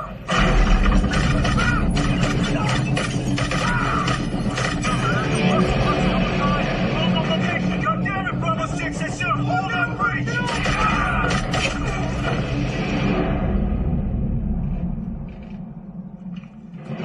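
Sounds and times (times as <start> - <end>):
sharp bangs: 0.3 - 7.3, 10.4 - 13.9
people shouting: 1.2 - 5.5, 10.2 - 12.1
low rumble: 10.6 - 17.0.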